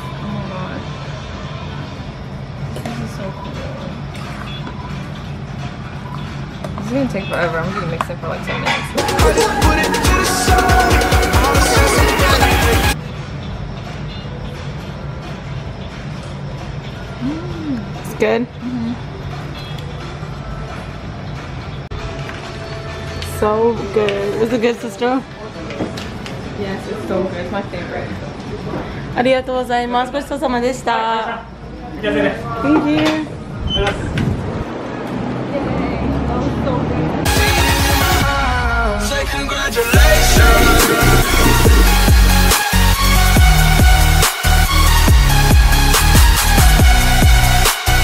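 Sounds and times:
restaurant background noise: 0.0 - 9.1, 12.0 - 37.2
faint music: 0.0 - 33.6
background music: 8.9 - 13.0, 37.3 - 48.0.

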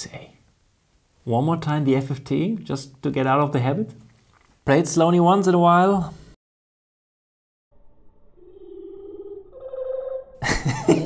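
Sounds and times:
slowed bird song warbling tones: 7.7 - 10.4.

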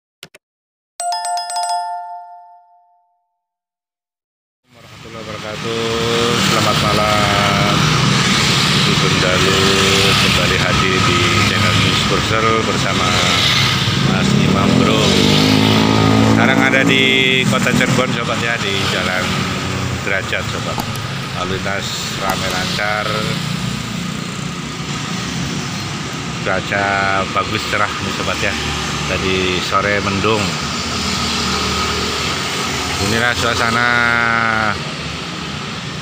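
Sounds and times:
road noise: 4.7 - 36.0
cars passing: 4.8 - 36.0
motorcycles passing: 4.8 - 36.0
motorcycle engine running: 20.7 - 21.4.

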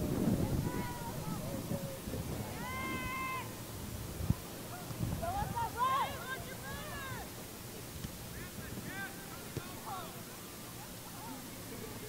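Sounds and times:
low crowd noise: 0.0 - 12.0.

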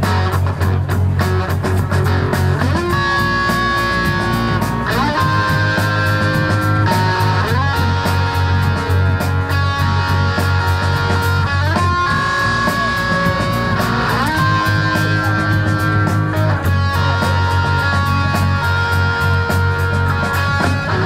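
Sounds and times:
bass and drums: 0.0 - 21.0
electric guitars sustained notes: 0.0 - 21.0.

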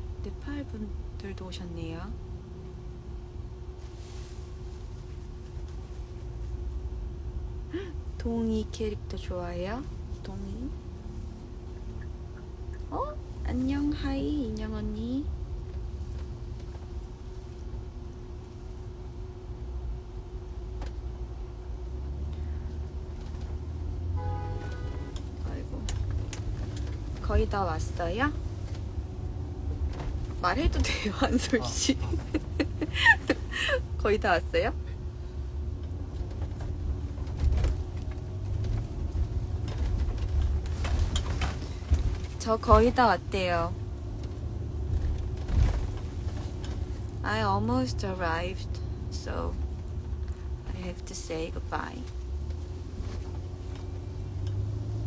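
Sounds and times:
steady hum: 0.0 - 54.3
car cabin rumble: 0.0 - 55.0
vehicle bump: 29.6 - 34.0, 35.8 - 43.2.

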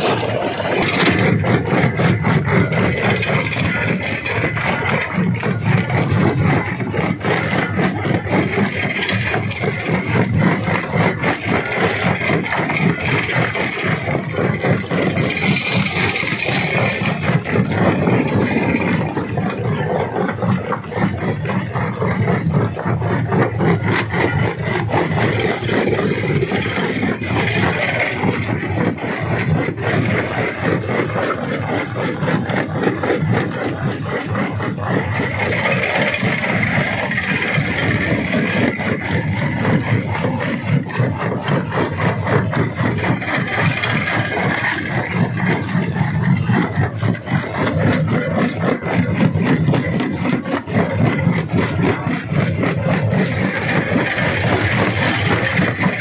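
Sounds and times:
machine drone: 0.0 - 56.0.

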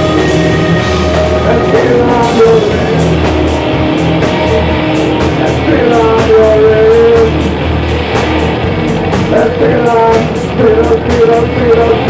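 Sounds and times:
cymbals struck: 0.0 - 6.6
distorted electric guitars: 0.0 - 12.0
rock band playing: 0.0 - 12.0.

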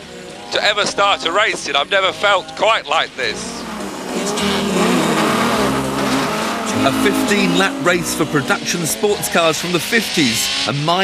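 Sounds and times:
racing car engines revving: 0.0 - 11.0.

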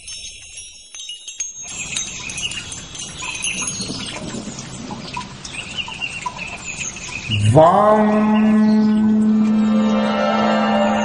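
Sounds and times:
soft tinkling chimes: 0.0 - 7.3
high warbling chirps: 6.6 - 11.0.

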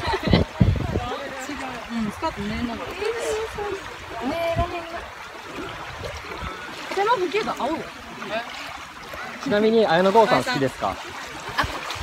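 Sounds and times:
small waves lapping at shore: 0.0 - 12.0.

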